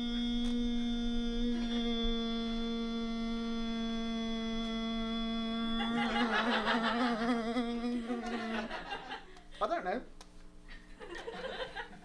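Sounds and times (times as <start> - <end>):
man singing a long note: 0.0 - 8.9.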